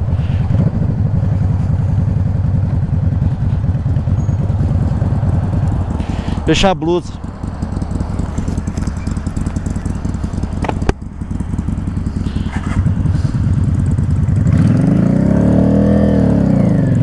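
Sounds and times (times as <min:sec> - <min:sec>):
motorcycle engine idling: 0:00.0 - 0:17.0
second engine passing: 0:00.0 - 0:17.0.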